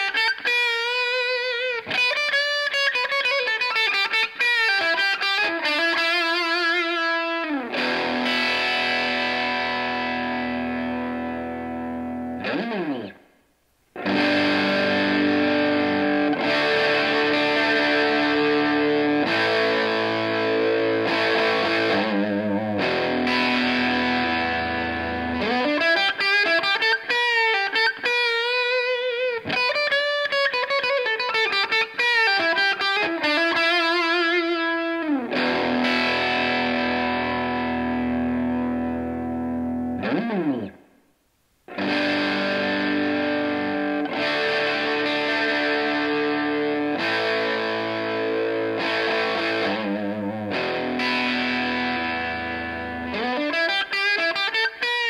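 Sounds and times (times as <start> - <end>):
overdriven electric guitar: 0.0 - 55.0.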